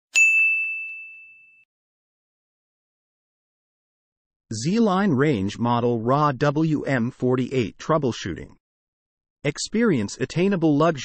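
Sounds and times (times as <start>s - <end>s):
bright bell ding: 0.1s - 1.7s.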